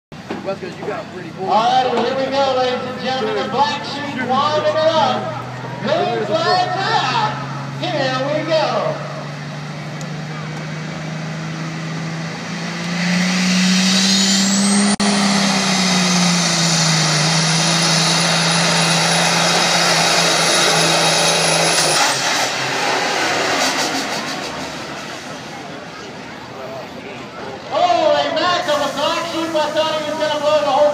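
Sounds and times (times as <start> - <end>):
diesel truck engine at full throttle: 0.1 - 30.9
announcer talking over pa: 0.6 - 9.2, 27.7 - 30.9.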